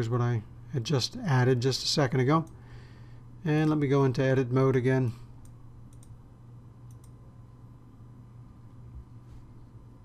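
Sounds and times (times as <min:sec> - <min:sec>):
steady low hum: 0:00.0 - 0:10.0
computer mouse clicks: 0:05.4 - 0:06.2, 0:06.8 - 0:07.2.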